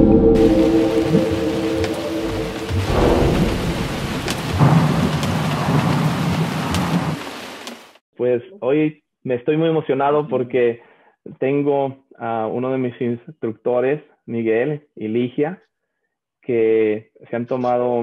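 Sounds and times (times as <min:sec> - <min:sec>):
held musical chord: 0:00.0 - 0:04.6
low thunder rolls: 0:00.0 - 0:07.5
steady rain: 0:00.4 - 0:08.0.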